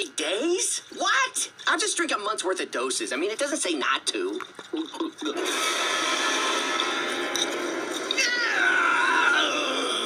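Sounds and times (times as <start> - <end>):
high-pitched cat-like wail: 8.1 - 10.0.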